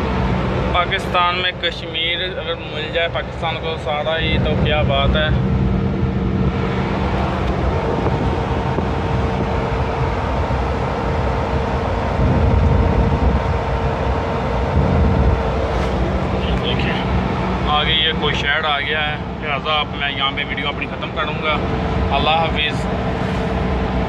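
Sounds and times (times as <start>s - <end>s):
faint whine: 0.0s - 24.0s
van engine and road noise: 0.0s - 24.0s.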